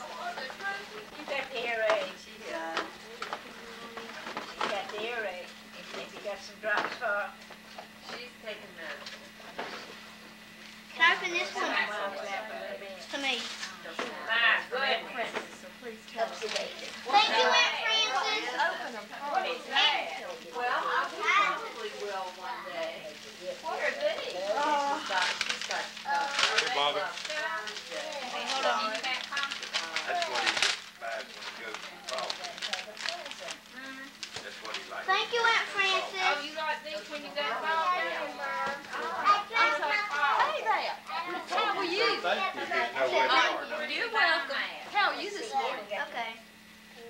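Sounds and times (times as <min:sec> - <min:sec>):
faint steady hum: 0:00.0 - 0:47.0.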